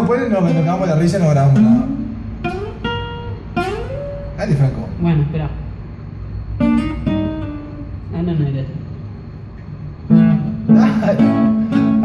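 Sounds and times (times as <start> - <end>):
acoustic guitar chords strummed: 0.0 - 4.6, 6.5 - 8.0, 9.9 - 12.0.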